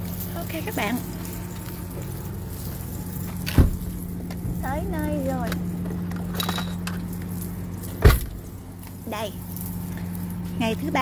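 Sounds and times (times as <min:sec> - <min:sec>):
low machinery drone: 0:00.0 - 0:11.0.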